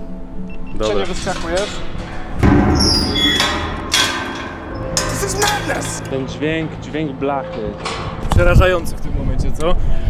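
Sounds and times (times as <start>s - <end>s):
music: 0.0s - 10.0s
sheet metal basket clanking: 0.8s - 8.6s
high metallic ringing: 1.0s - 8.8s.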